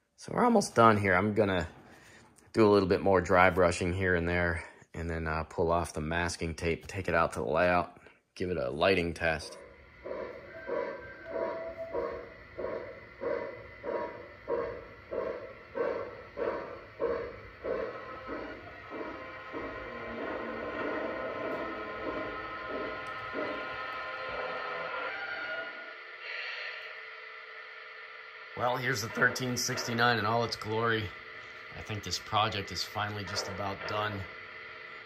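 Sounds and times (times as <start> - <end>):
model train steam chuffs: 11.3 - 28.0, 28.6 - 35.0
steam hiss: 11.4 - 35.0.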